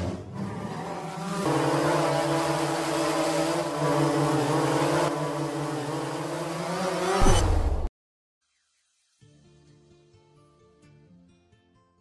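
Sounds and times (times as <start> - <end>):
drone propeller buzz: 0.0 - 7.9.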